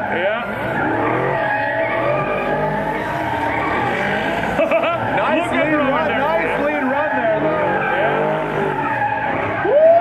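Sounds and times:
car engines at high revs: 0.0s - 9.8s
tyres skidding and squealing: 0.0s - 10.0s.

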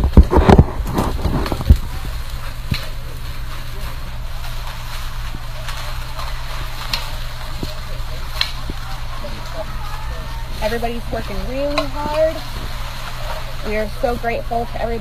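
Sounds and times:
faint voices: 0.0s - 15.0s
steady low rumble: 0.0s - 15.0s
sharp knocks and snaps: 4.6s - 8.9s.

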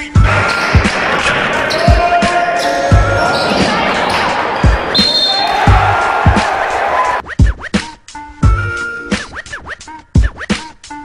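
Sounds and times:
voices echoing in a gym: 0.4s - 5.6s.

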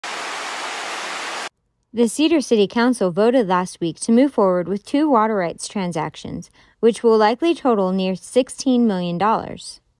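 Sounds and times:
creek water rushing over rocks: 0.0s - 1.5s.

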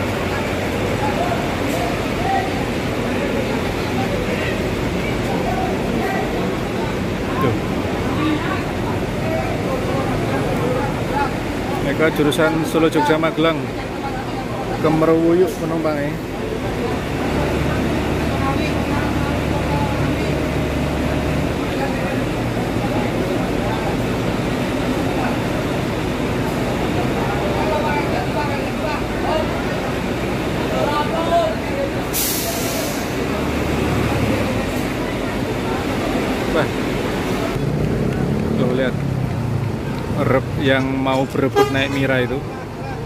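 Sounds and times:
bus engines idling: 0.0s - 43.0s
crowd chatter: 0.0s - 43.0s
air brake hiss: 32.1s - 33.2s.

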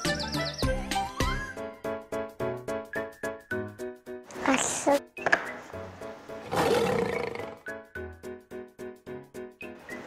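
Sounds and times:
lion roar: 6.4s - 7.6s.

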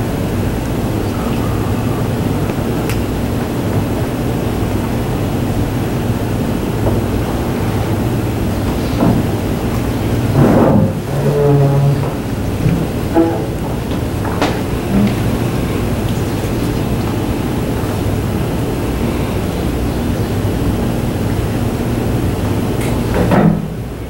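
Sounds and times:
low room hum and rumble: 0.0s - 24.0s.

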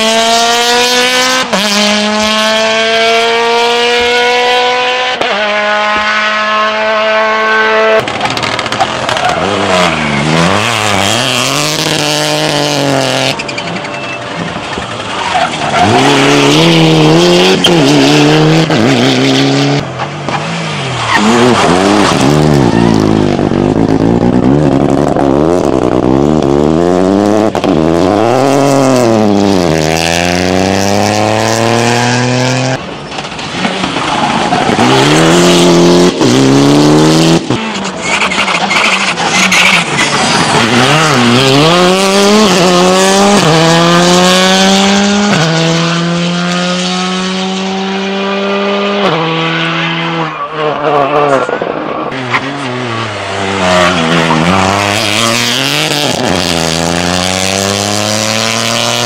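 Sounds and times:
rally cars passing at speed: 0.0s - 59.0s.

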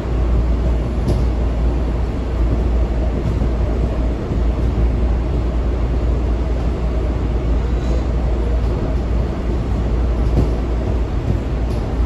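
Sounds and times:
train running rumble: 0.0s - 12.0s.

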